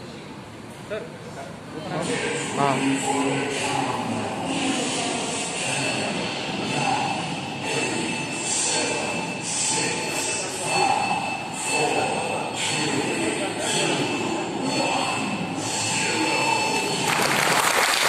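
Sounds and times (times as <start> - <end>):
indistinct voices: 1.4 - 18.0.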